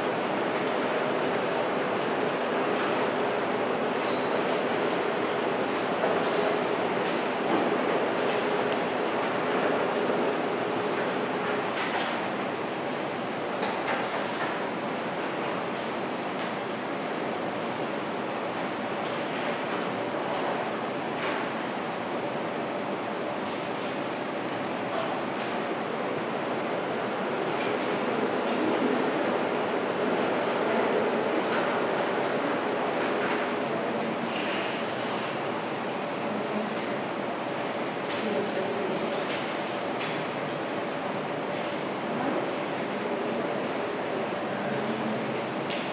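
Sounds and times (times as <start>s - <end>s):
room hum: 0.0s - 45.9s.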